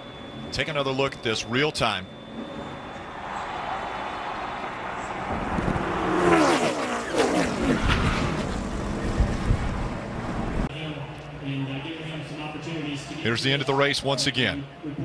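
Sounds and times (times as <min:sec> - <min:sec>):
racing car engines roaring: 0:02.2 - 0:10.7.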